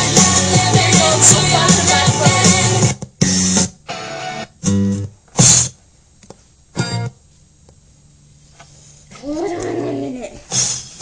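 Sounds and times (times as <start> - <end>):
person making mock animal roar: 9.2 - 10.4.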